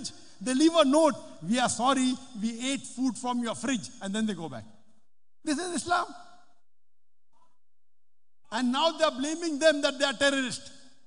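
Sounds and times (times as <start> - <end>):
man speaking: 0.4 - 4.7, 5.4 - 6.2, 8.5 - 10.7.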